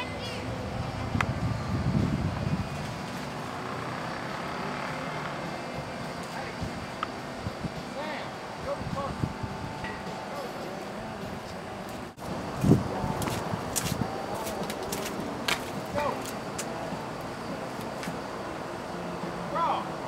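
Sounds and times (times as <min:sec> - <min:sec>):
indistinct voices talking: 0:03.5 - 0:20.0.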